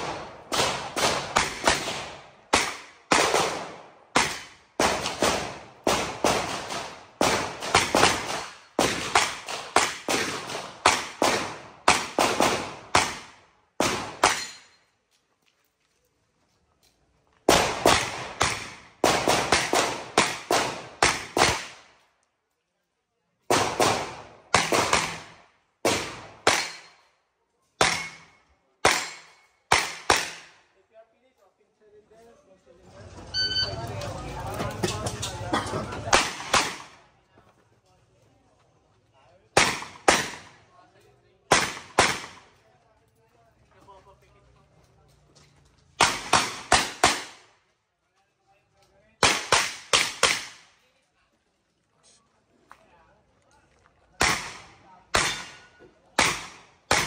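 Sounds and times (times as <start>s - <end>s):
pistol shots with echo: 0.0s - 14.7s, 17.5s - 21.9s, 23.5s - 27.0s, 27.8s - 30.6s, 36.1s - 37.0s, 39.5s - 40.6s, 41.5s - 42.5s, 46.0s - 47.5s, 49.2s - 50.7s, 54.2s - 57.0s.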